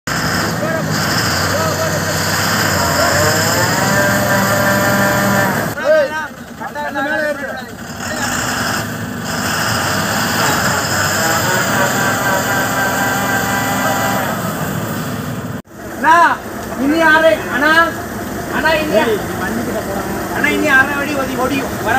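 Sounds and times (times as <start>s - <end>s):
truck diesel engine revving hard: 0.0s - 21.9s
men shouting: 0.6s - 8.4s, 10.3s - 14.5s, 16.0s - 21.9s.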